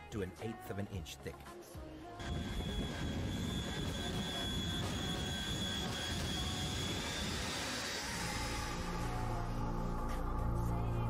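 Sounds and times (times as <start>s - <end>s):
jet engine rushing with whine: 2.2s - 10.3s.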